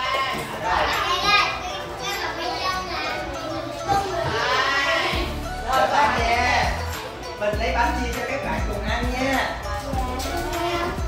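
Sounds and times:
young children talking: 0.0 - 6.2, 9.6 - 11.0.

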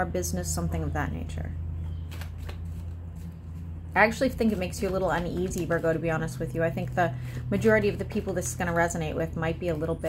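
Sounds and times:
low electrical hum: 0.0 - 10.0
cards rustling: 2.0 - 6.0.

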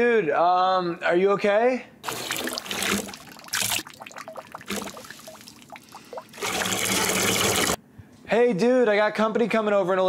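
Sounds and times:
urine splashing into toilet water: 2.0 - 7.8.

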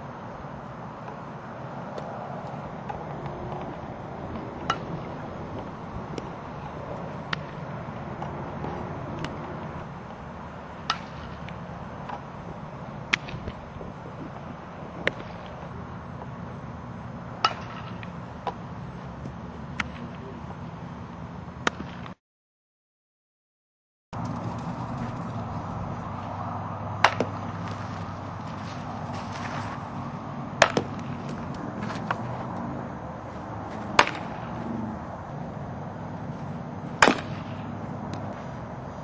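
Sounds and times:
low outdoor rumble: 0.0 - 22.2, 24.2 - 39.0
softball impact cracks: 1.9 - 12.3, 13.0 - 13.9, 14.9 - 16.3, 17.4 - 18.6, 21.6 - 22.2, 24.2 - 32.7, 33.4 - 34.7, 36.4 - 38.5.

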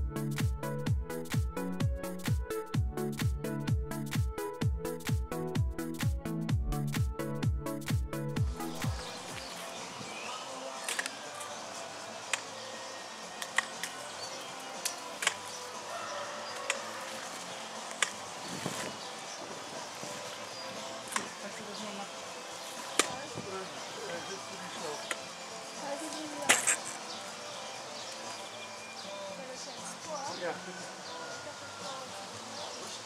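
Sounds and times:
background music: 0.0 - 33.0
outdoor background noise: 8.4 - 33.0.

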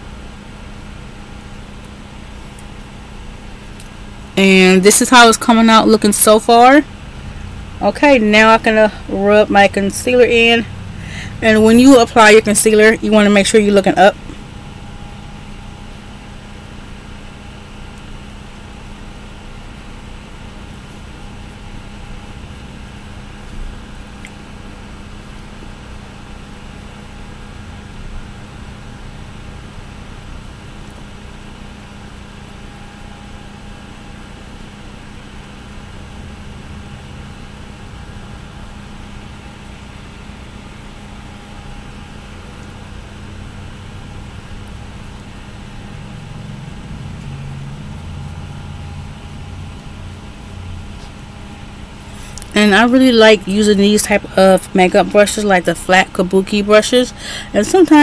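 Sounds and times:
background hum: 0.0 - 58.0
faint constant tone: 0.0 - 58.0.

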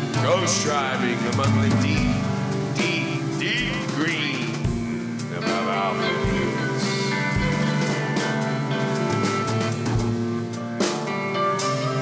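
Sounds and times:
rock band playing: 0.0 - 12.0
bass drum thumps: 1.3 - 5.2, 9.1 - 10.4.

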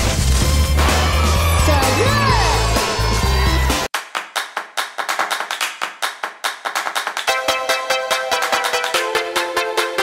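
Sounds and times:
sharp clap-like percussion hits: 3.9 - 9.3.

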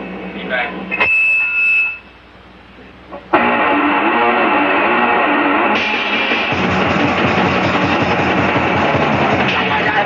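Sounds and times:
distorted punk rock: 3.3 - 10.0.

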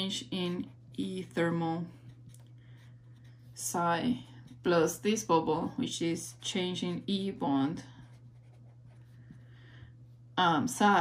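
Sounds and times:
marker pen scratching on paper: 0.0 - 9.5.

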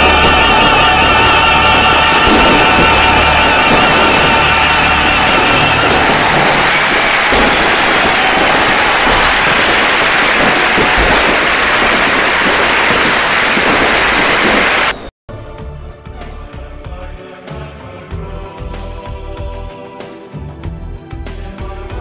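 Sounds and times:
firecracker barrage crackling: 0.0 - 15.1.

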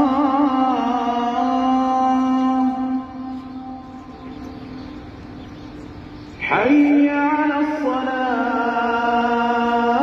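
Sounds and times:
man chanting call to prayer: 6.4 - 10.0.

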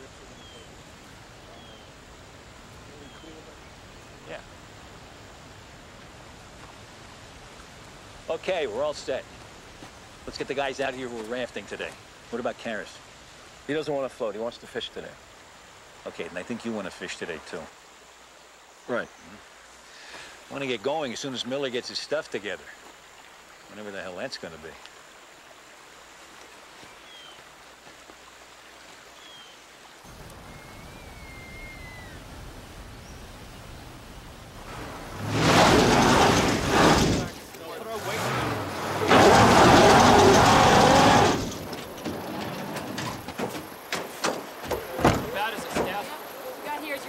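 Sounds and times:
wheel spinning in mud: 34.6 - 43.3.

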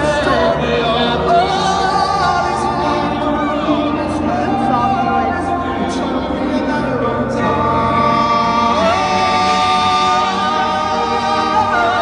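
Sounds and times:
choir-like backing vocals: 0.0 - 12.0
lead singer: 0.0 - 12.0.

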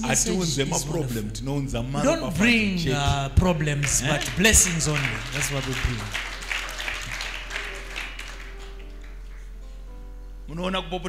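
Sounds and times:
congregation clapping: 3.6 - 9.6.

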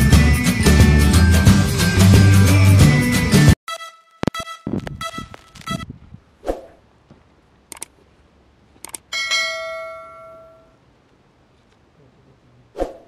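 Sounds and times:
short low sound: 4.2 - 6.2
sharp mouse clicks: 7.7 - 7.9, 8.8 - 9.0.

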